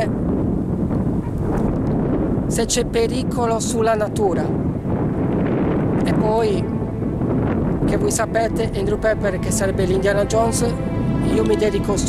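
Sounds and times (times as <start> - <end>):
wind blowing on microphone: 0.0 - 12.0.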